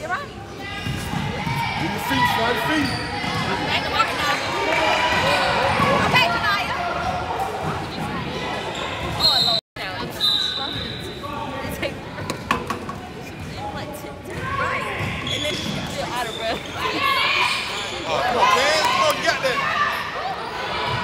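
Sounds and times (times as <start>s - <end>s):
voices echoing in hall: 0.0s - 21.0s.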